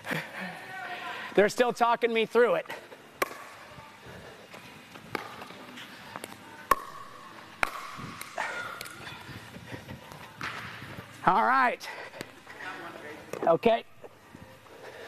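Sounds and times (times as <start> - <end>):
ball bouncing on court: 3.2 - 3.5, 6.7 - 8.9
paddles striking plastic ball: 3.2 - 3.5, 6.7 - 8.9.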